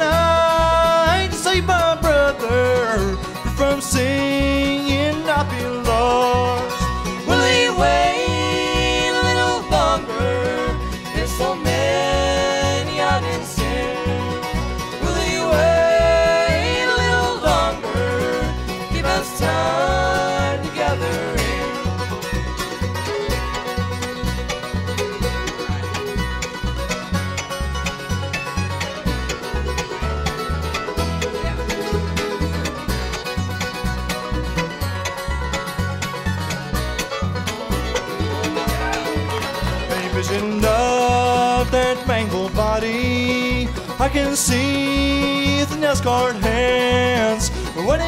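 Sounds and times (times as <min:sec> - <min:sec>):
acoustic guitar: 0:00.0 - 0:48.0
fiddle: 0:00.0 - 0:48.0
mandolin picking: 0:00.0 - 0:48.0
close harmony singing: 0:07.1 - 0:22.2.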